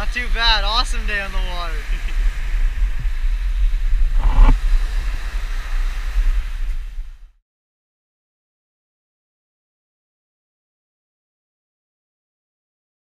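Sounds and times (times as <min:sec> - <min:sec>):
wind buffeting microphone: 0:00.0 - 0:07.4
gust or knock: 0:03.9 - 0:05.2.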